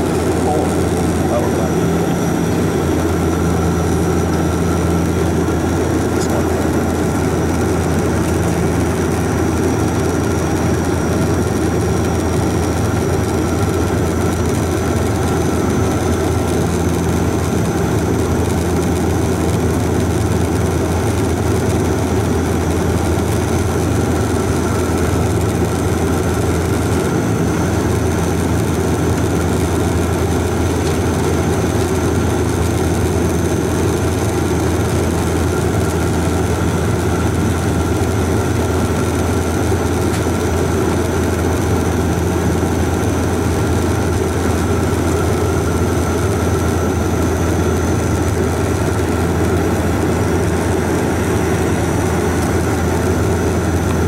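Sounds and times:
airliner engines droning in cabin: 0.0 - 54.0.

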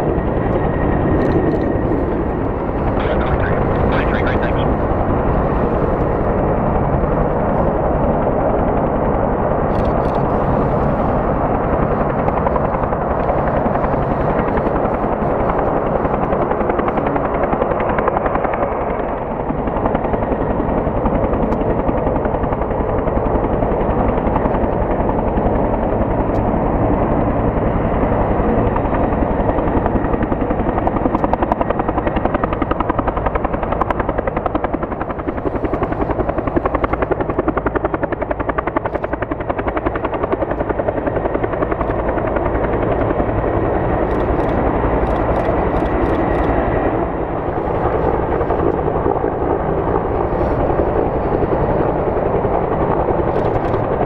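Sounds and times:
helicopter rotor beating: 0.0 - 54.0
turboshaft engines running: 0.0 - 54.0.

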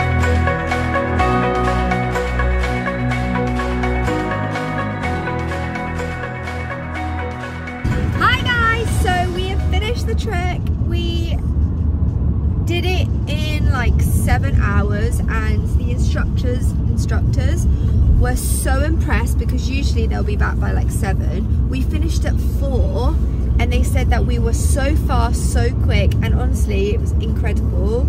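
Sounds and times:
car driving rumble from inside: 7.4 - 28.0
woman talking: 8.2 - 11.4, 12.7 - 28.0.

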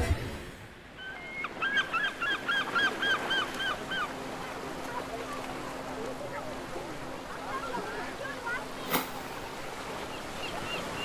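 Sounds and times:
bird calling: 1.0 - 4.2, 10.0 - 11.0.

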